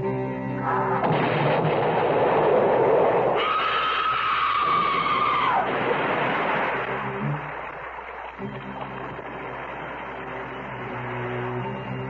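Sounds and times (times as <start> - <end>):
explosion burst: 0.9 - 4.0, 4.6 - 7.4.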